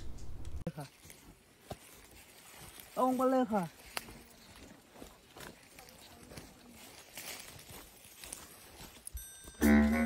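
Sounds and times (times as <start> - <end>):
footsteps on dry leaves: 0.8 - 10.0.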